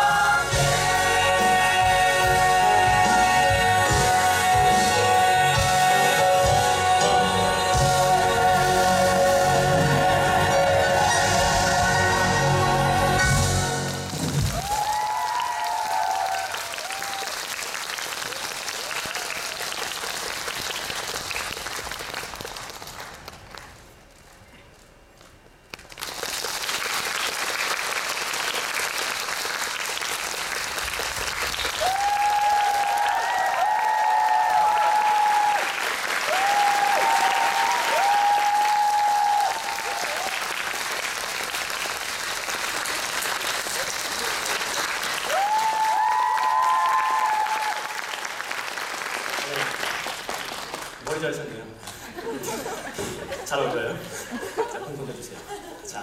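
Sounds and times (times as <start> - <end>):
audience applauding: 13.7 - 24.0, 25.7 - 51.5.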